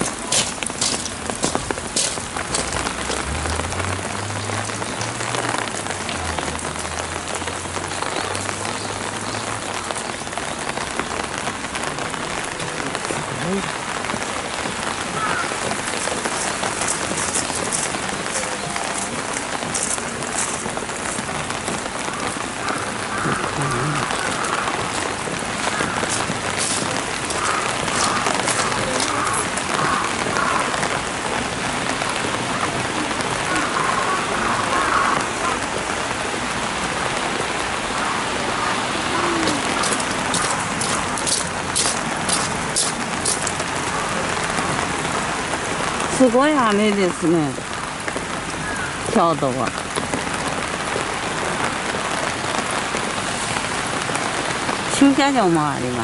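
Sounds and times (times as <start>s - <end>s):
heavy rain falling: 0.0s - 56.0s.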